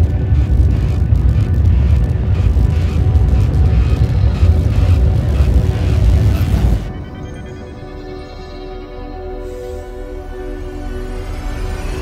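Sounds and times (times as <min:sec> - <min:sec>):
deep cinematic rumble: 0:00.0 - 0:08.2.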